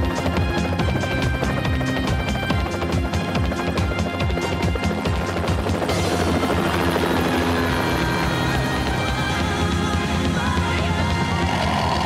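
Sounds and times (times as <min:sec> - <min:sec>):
music: 0:00.0 - 0:12.0
steady mechanical drone: 0:00.0 - 0:12.0.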